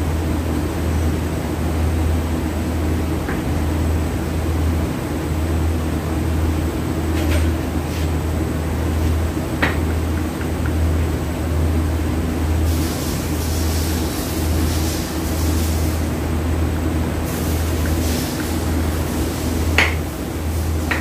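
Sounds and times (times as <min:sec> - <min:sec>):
low machine hum: 0:00.0 - 0:21.0
hiss: 0:12.6 - 0:16.2, 0:17.2 - 0:21.0.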